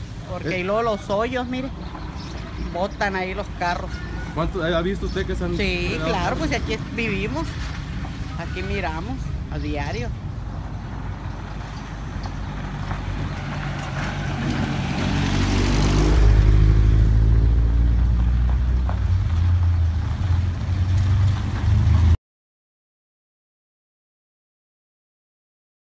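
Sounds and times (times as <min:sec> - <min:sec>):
pickup truck engine: 0:00.0 - 0:22.2
tyres on rough street: 0:00.0 - 0:22.2.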